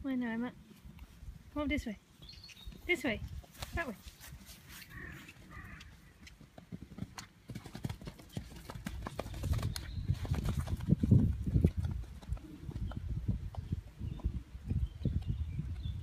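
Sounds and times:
horse hoofbeats on grass: 2.1 - 16.0.

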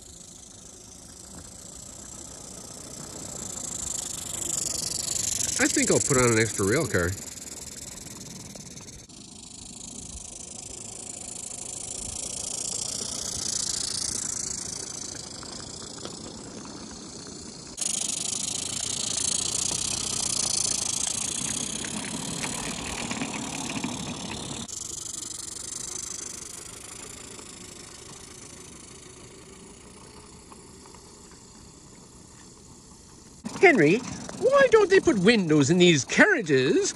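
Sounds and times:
steam locomotive hissing: 0.0 - 36.9
wagons rattling on track: 0.0 - 36.9.

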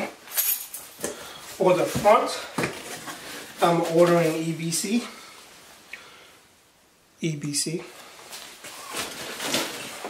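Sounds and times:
cardboard and paper rustling: 8.3 - 10.0.

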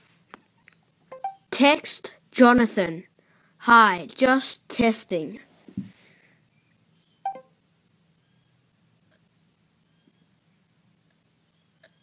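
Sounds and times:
two-note electronic blip: 1.1 - 1.5, 7.3 - 7.5.

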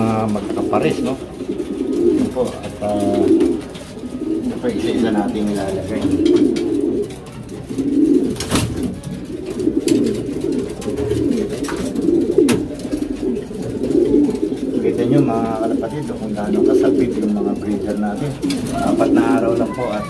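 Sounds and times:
pigeons cooing: 0.0 - 20.0.

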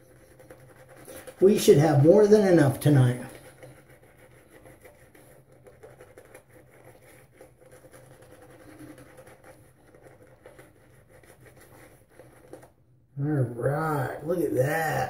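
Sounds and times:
shaving brush swishing lather: 0.0 - 12.8.

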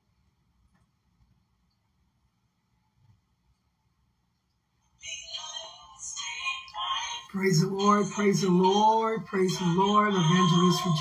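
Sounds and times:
song with singing: 6.7 - 11.0.

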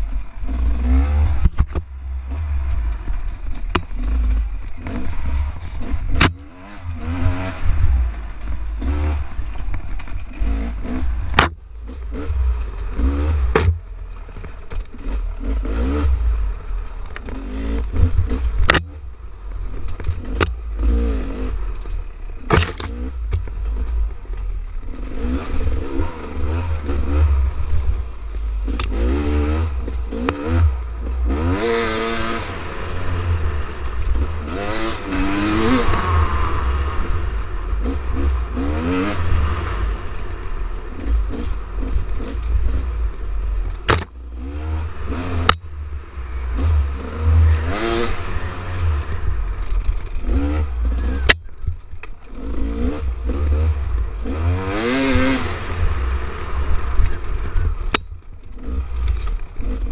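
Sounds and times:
dirt bike engine revving: 0.0 - 14.0, 14.8 - 19.1, 19.7 - 24.1, 24.7 - 59.9.

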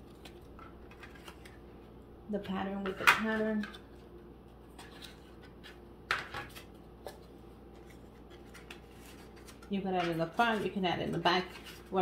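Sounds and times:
paper envelopes tapping and rustling: 4.7 - 12.0.

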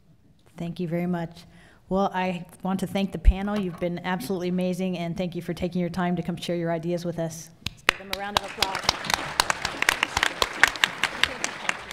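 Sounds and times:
audience applauding: 7.9 - 11.9.

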